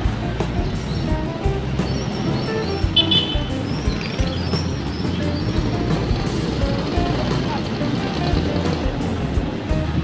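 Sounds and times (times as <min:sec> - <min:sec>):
motorbikes passing: 0:00.0 - 0:10.0
music playing: 0:00.0 - 0:10.0
street traffic noise: 0:00.0 - 0:10.0.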